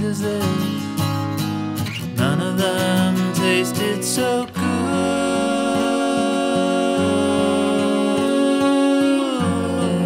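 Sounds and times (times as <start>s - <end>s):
person singing: 0.0s - 0.8s, 2.2s - 10.0s.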